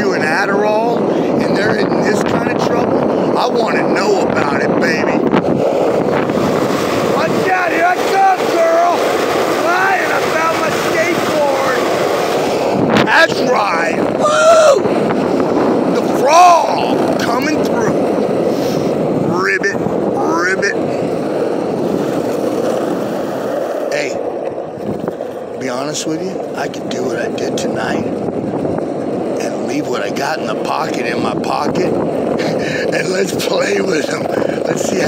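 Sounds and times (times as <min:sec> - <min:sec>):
skateboard wheels rolling on pavement: 0:00.0 - 0:35.0
wind buffeting microphone: 0:00.0 - 0:35.0.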